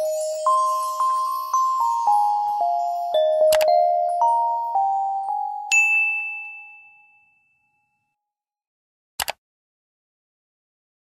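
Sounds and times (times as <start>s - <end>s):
soft chime melody: 0.0s - 8.1s
bright chime ding: 4.8s - 7.7s.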